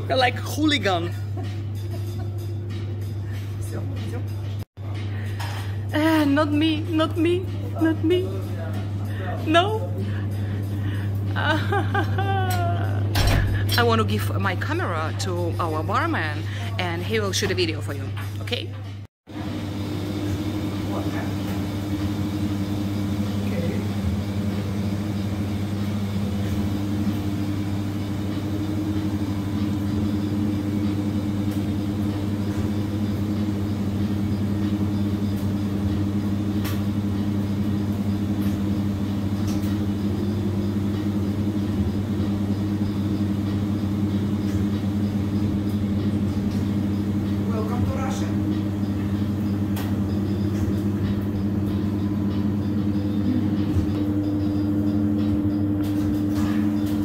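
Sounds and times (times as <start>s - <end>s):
low machine hum: 0.0s - 57.0s.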